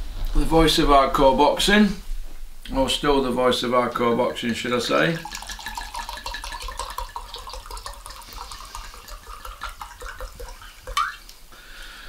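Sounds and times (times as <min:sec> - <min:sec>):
wine pouring into a glass: 0:04.3 - 0:11.3.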